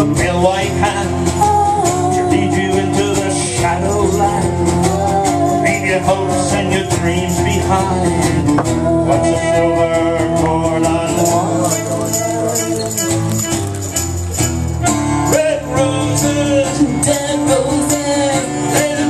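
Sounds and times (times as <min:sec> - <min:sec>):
strummed acoustic guitar: 0:00.0 - 0:19.0.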